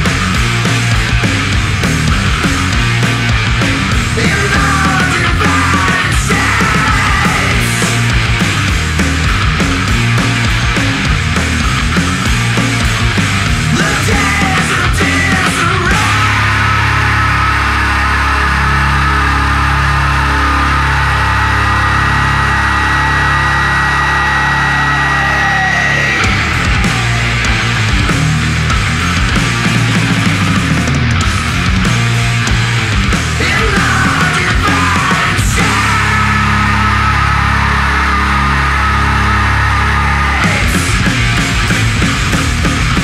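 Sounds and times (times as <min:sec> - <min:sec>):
held rock guitar chord: 0:00.0 - 0:43.0
low drone: 0:15.9 - 0:43.0.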